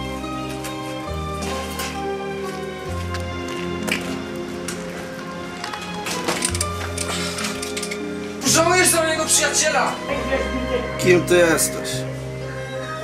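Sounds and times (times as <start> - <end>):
background music with bass: 0.0 - 13.0.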